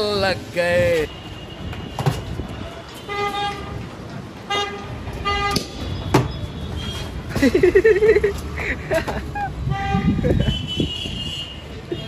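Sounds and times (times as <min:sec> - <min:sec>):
street traffic noise: 0:00.0 - 0:12.0
vehicle horn honking: 0:09.7 - 0:12.0.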